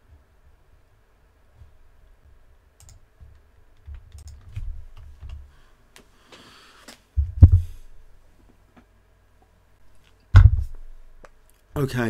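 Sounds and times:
dull thump: 7.2s - 7.7s, 10.4s - 10.8s.

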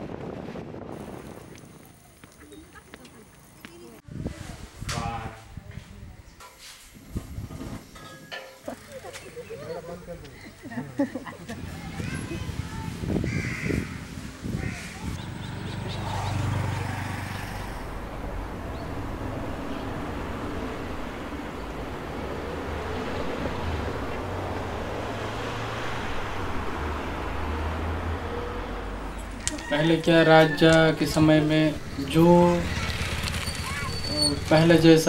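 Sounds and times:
low rumble: 16.2s - 29.5s
bird calling: 31.7s - 34.5s.

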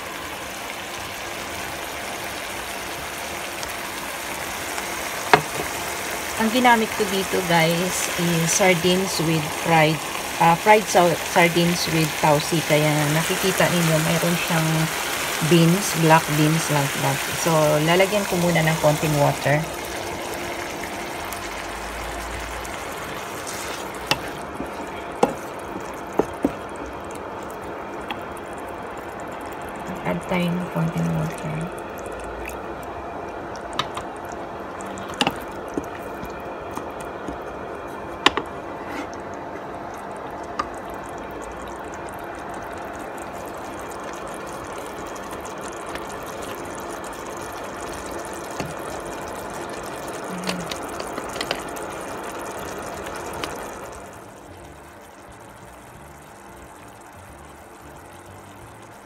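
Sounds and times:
sauce bubbling in a pan: 0.0s - 59.0s
spatula tapping a pan: 24.1s - 25.4s.

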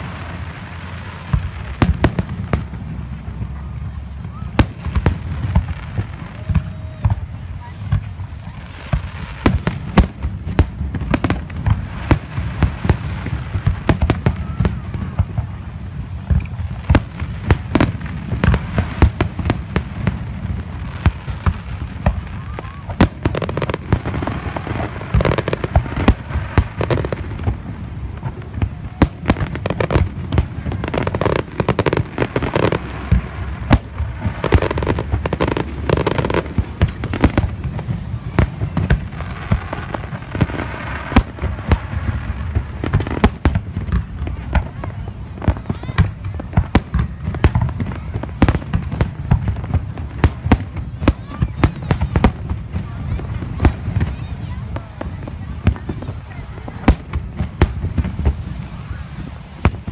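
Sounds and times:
firework crackles: 0.0s - 59.9s.

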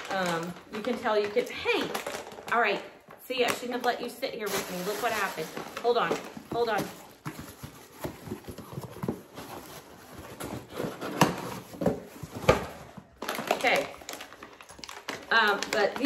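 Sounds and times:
cardboard and packaging rustling: 0.0s - 2.8s, 3.4s - 16.0s.

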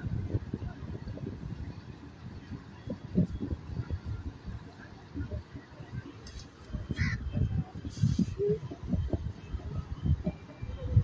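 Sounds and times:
constant low rumble: 0.0s - 11.0s.

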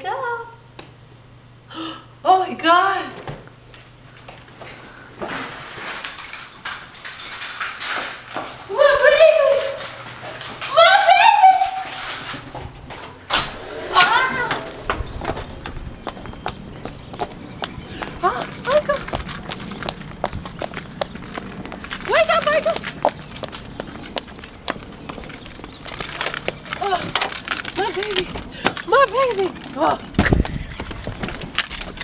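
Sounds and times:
woman exclaiming: 8.7s - 10.0s, 10.6s - 12.1s, 13.9s - 14.7s, 18.2s - 19.1s, 22.1s - 22.8s, 26.8s - 27.2s.

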